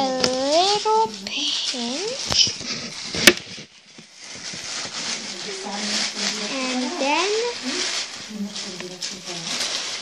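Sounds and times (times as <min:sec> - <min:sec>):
fabric rustling: 0:00.1 - 0:10.0.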